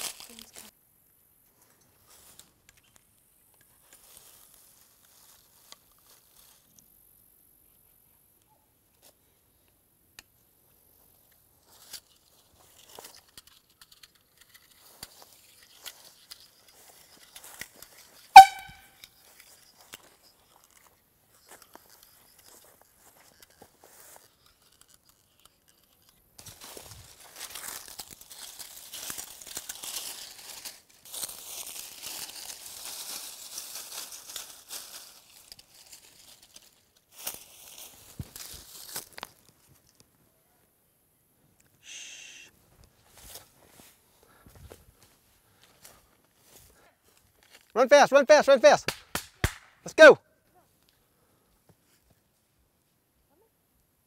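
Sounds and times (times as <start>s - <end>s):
dry grass rustling and crackling: 0.0s - 0.8s, 1.4s - 7.2s, 10.6s - 40.4s, 42.5s - 47.8s
air horn blast: 18.3s - 18.9s.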